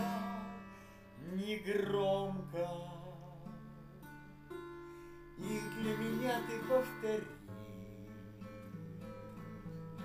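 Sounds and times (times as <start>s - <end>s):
plucked guitar notes and chords: 0.0s - 10.0s.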